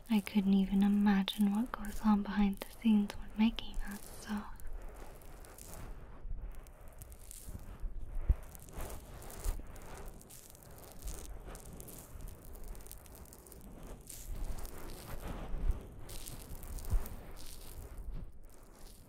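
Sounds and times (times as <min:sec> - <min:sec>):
scratchy rustling and rattling: 0:00.0 - 0:19.0.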